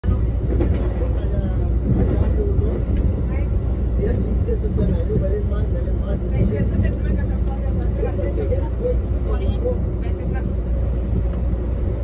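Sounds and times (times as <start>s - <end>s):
train rumbling from inside: 0.0s - 12.0s.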